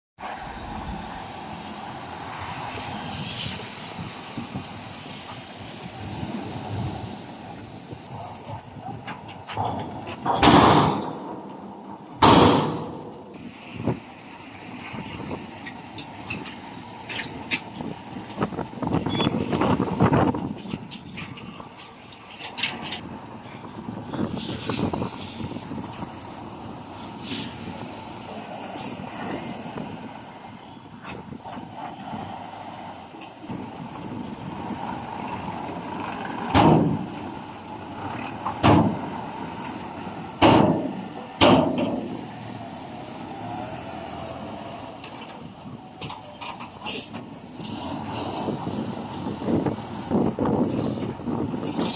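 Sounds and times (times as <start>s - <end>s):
diesel truck engines running: 0.2s - 51.9s.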